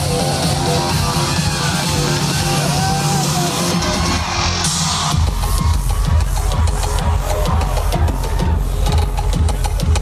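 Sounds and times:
electronic dance music: 0.0s - 10.0s
kick drum: 5.1s - 10.0s.

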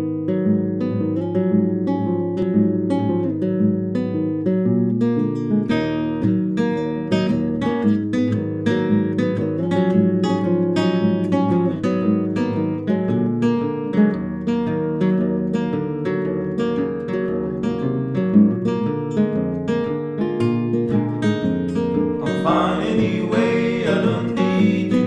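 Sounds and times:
classical guitars playing: 0.0s - 25.0s.

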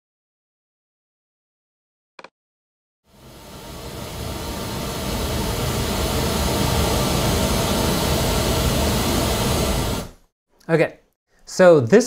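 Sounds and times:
pink noise test signal: 3.1s - 10.2s.

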